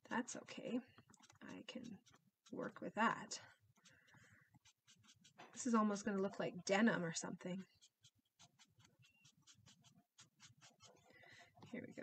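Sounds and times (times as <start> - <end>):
marker scratching on paper: 0.8 - 12.0.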